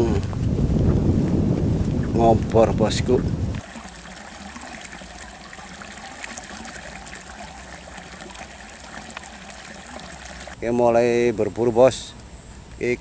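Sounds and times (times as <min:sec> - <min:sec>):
water gushing into a pool: 0:03.6 - 0:10.6.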